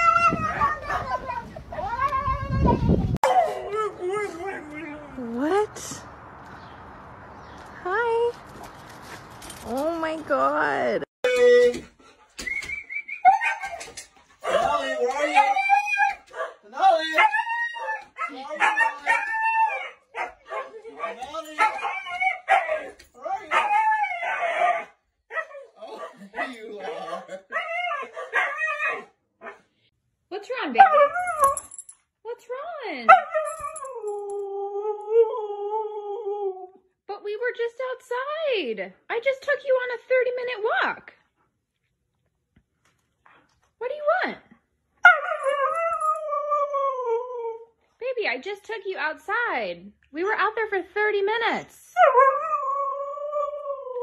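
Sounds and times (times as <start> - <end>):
dog howling yowls: 0.0 - 2.4, 14.4 - 20.4, 21.2 - 26.5, 27.5 - 29.1, 45.0 - 47.7, 52.0 - 54.0.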